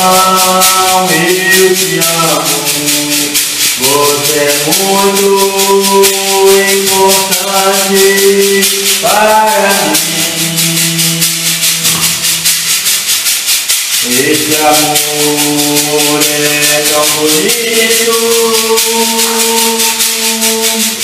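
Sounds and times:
metal cylinder shaker: 0:00.0 - 0:21.0.

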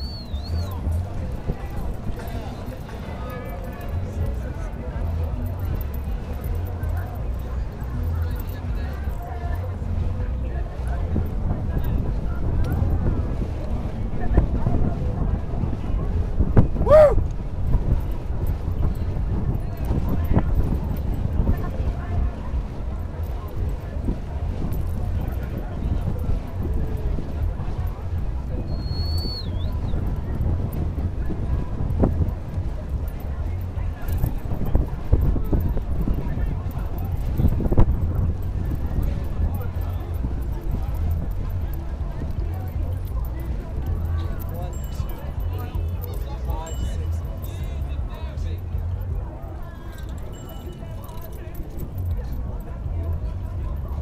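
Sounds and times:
faint voices of onlookers: 0:00.0 - 0:54.0
wind buffeting microphone: 0:00.0 - 0:54.0.

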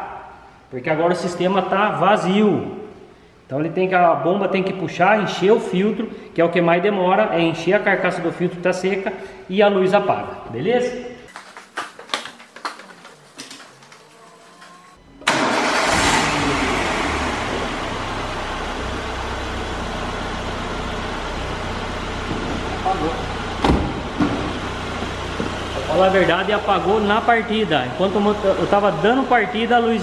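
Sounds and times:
car engine cranking and idling: 0:15.2 - 0:29.7.

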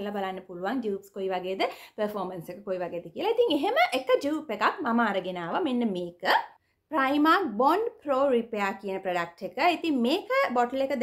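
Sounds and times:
woman speaking: 0:00.0 - 0:11.0.

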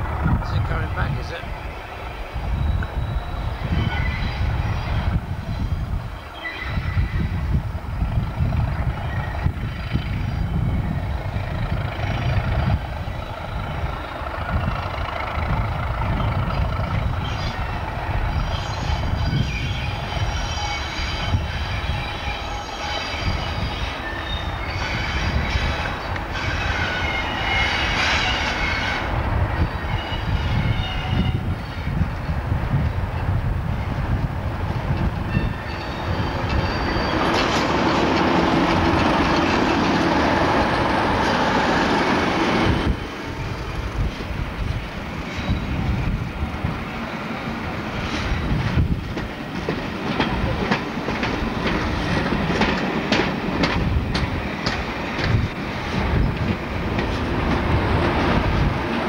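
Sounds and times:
diesel locomotive engine rumbling: 0:00.0 - 0:59.0
train wheels squealing: 0:00.5 - 0:07.6, 0:08.7 - 0:32.4, 0:34.9 - 0:49.0.

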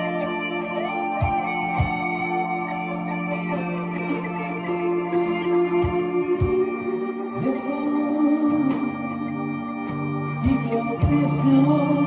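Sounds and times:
electric guitar melody: 0:00.0 - 0:12.0
low bass notes: 0:00.0 - 0:12.0
sustained backing chords: 0:00.0 - 0:12.0.

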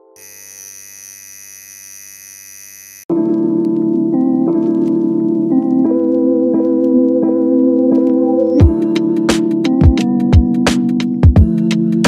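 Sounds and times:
tattoo machine humming: 0:00.2 - 0:03.1.

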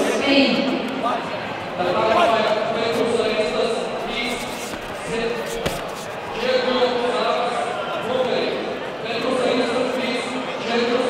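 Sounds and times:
strike smacking padding: 0:04.2 - 0:06.3.

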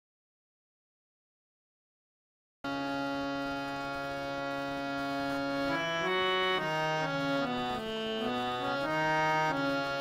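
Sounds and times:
harmonium holding a reedy note: 0:02.7 - 0:10.0.

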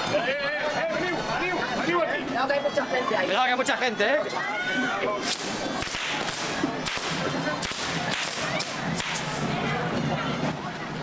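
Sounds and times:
firework cracks: 0:05.2 - 0:09.5
fountain fireworks hissing: 0:05.2 - 0:09.8.

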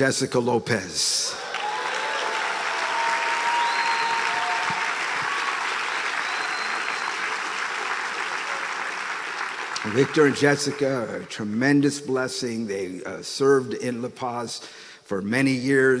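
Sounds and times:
congregation applauding: 0:01.3 - 0:11.6.

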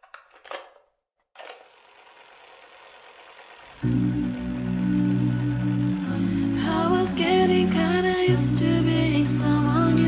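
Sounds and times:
tape hiss: 0:03.8 - 0:10.0.

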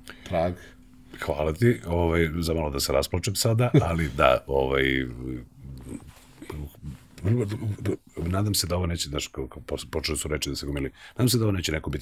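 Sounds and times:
faint breaths and murmurs: 0:05.2 - 0:08.3.

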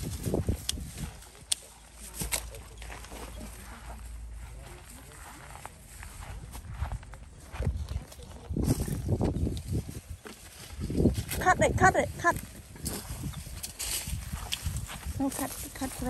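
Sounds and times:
footsteps on dry leaves: 0:00.0 - 0:16.0.

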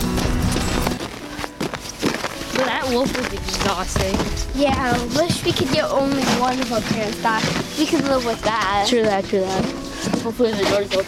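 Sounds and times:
young person speaking: 0:02.5 - 0:11.0.

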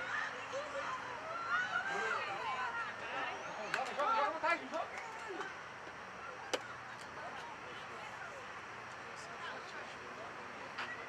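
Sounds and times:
crowd shouting and cheering: 0:00.0 - 0:05.2
murmur of voices: 0:00.0 - 0:11.0.

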